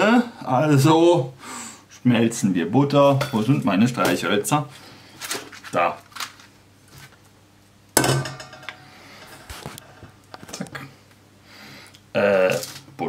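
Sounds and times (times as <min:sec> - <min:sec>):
metal pot clanking on stove: 0:08.0 - 0:08.9.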